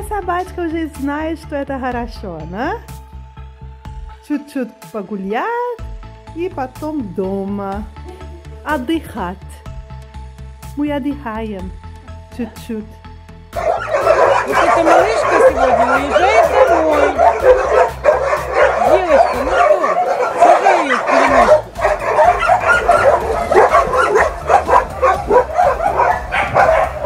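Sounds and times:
background music: 0.0s - 27.0s
many dogs barking and yelping: 13.6s - 27.0s.

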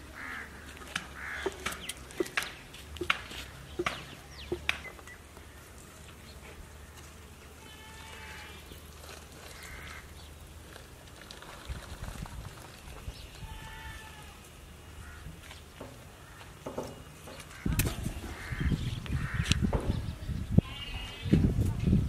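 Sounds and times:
sharp knocks and cracks: 0.9s - 5.0s.

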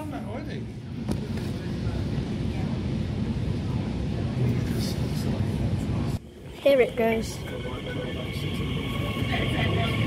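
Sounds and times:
electric train rumbling: 0.0s - 10.0s.

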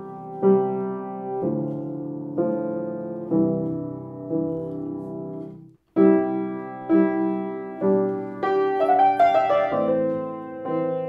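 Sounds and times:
piano chords: 0.0s - 11.0s
piano melody notes: 0.0s - 11.0s.

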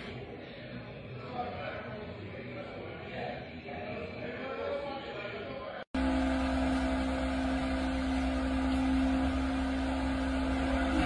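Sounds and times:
machine hum with low tone: 6.0s - 11.0s.

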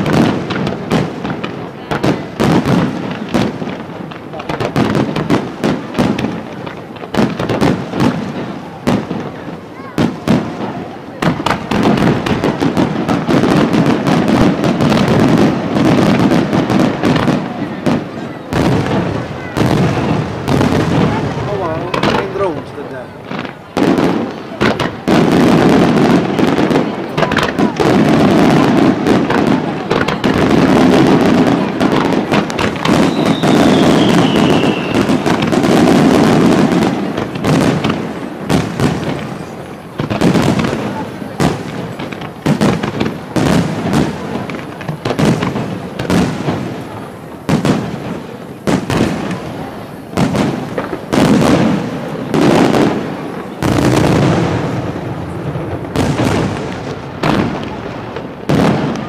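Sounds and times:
firework shells bursting: 0.0s - 59.0s
falling firework whistle: 26.8s - 39.5s.

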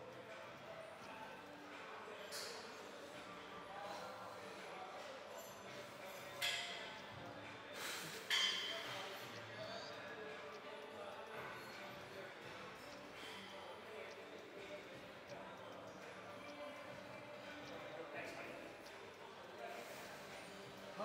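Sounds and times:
faint indistinct voices: 0.0s - 21.0s.

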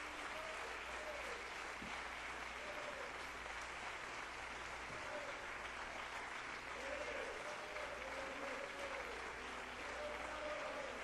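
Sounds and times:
congregation applauding: 0.0s - 11.0s.

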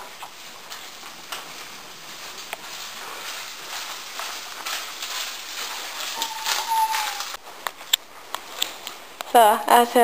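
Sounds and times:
food sizzling in frying pan: 0.0s - 7.6s.

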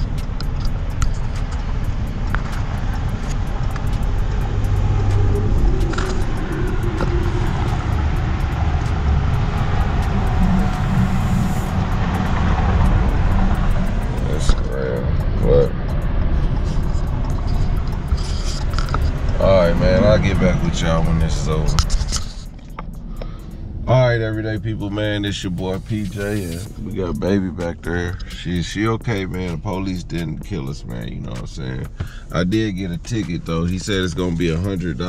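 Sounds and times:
wind noise: 0.0s - 23.0s
truck engine idling: 0.0s - 29.5s.

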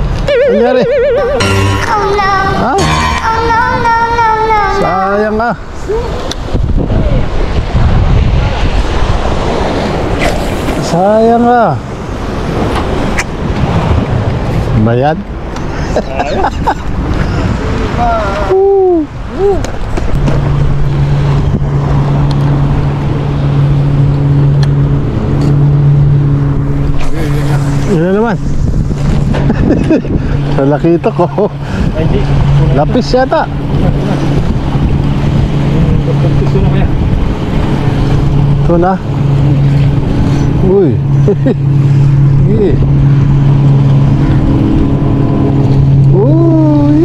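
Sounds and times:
low motor hum: 0.0s - 47.0s
man calling out: 0.3s - 1.0s, 46.1s - 47.0s
wind buffeting microphone: 3.4s - 47.0s
sea waves breaking on rocks: 7.2s - 15.6s.

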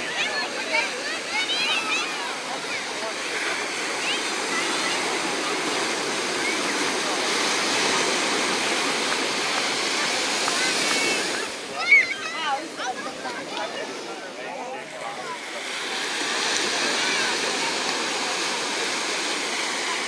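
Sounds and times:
ocean surf washing onto beach: 0.0s - 20.0s
people's voices: 0.0s - 20.0s
wave breaking along shore: 0.0s - 20.0s.

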